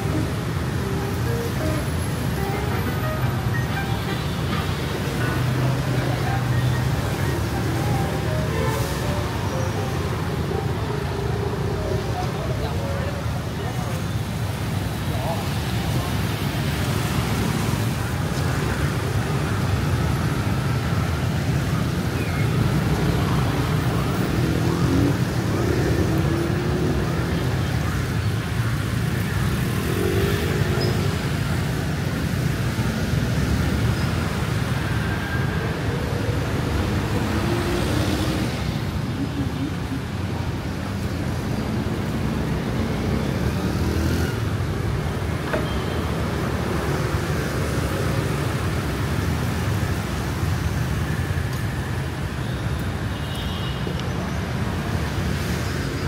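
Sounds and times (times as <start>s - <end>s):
motorbikes and cars passing: 0.0s - 56.0s.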